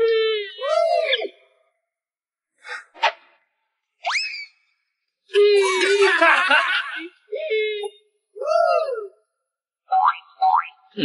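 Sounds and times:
girl crying out: 0:07.3 - 0:09.1.

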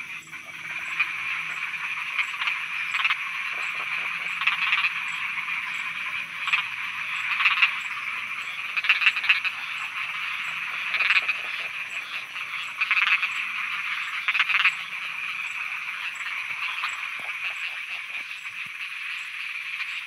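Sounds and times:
frogs croaking in bursts: 0:00.0 - 0:20.0
high-pitched frog chorus: 0:00.0 - 0:20.0.

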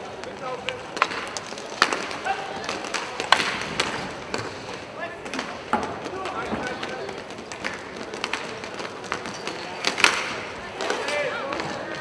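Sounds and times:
hockey sticks clacking: 0:00.0 - 0:12.0.

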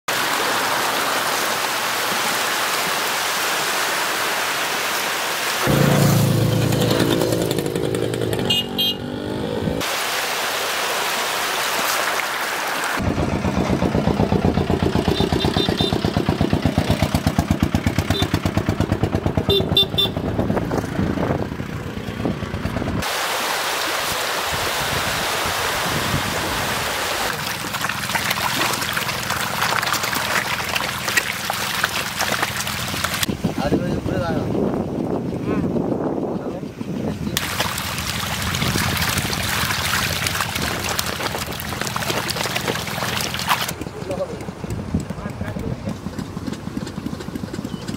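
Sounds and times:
motor engine running: 0:05.6 - 0:09.8, 0:13.0 - 0:23.0, 0:27.3 - 0:47.9
loud vehicle honk: 0:08.4 - 0:09.2, 0:15.1 - 0:16.1, 0:18.1 - 0:18.5, 0:19.5 - 0:20.3
fish thrashing and splashing: 0:27.2 - 0:33.3, 0:37.4 - 0:43.8.

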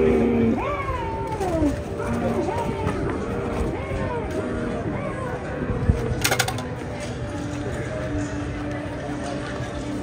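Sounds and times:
zombie wailing moan: 0:00.0 - 0:02.8.

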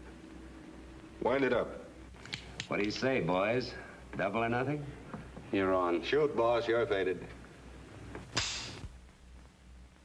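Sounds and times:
short hiss: 0:08.3 - 0:08.9.

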